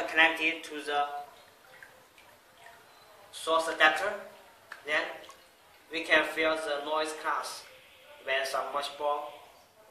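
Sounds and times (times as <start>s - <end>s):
faint water sounds: 0.0s - 9.9s.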